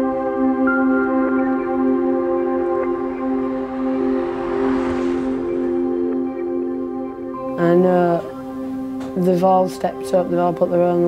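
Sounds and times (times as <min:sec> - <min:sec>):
ambient keyboard chords: 0:00.0 - 0:11.0.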